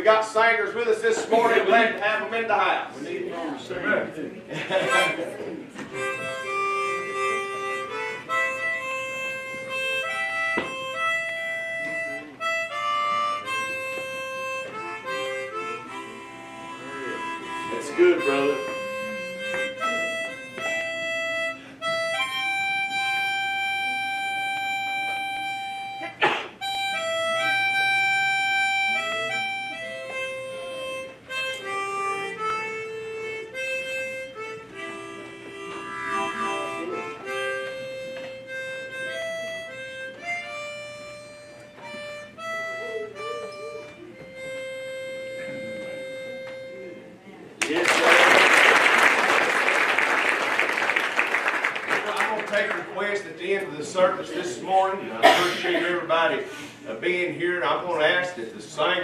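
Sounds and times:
harmonica melody: 0.0s - 59.0s
audience applauding: 47.6s - 52.8s.

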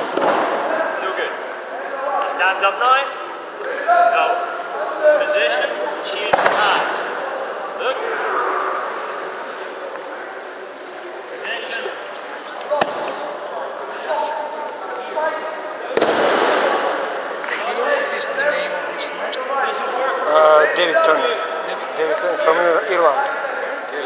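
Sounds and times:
murmur of many voices: 0.0s - 24.0s
sharp slap: 6.3s - 6.7s, 16.0s - 17.0s.

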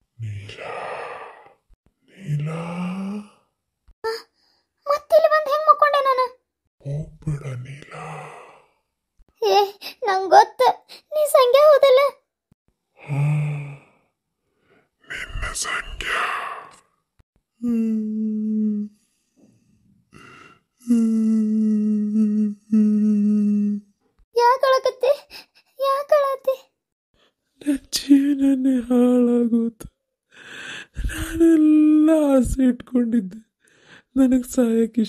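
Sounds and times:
person sighing: 2.3s - 3.4s, 13.0s - 13.9s.

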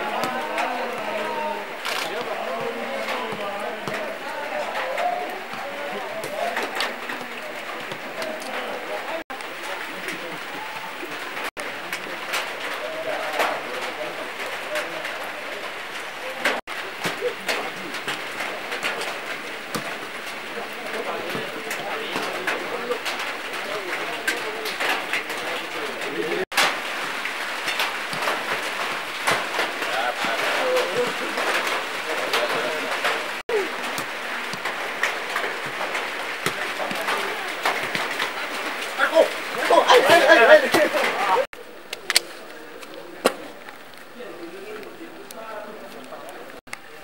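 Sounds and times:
indistinct voices: 0.0s - 26.7s, 27.3s - 47.0s
light rain hissing and ticking: 6.4s - 47.0s.

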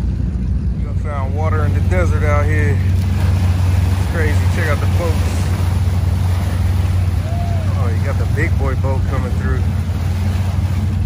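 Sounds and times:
motorboat engine passing: 0.0s - 11.0s.

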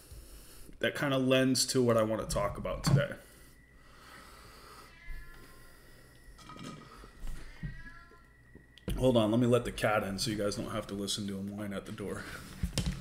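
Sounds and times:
cat whining and meowing: 4.5s - 8.7s.

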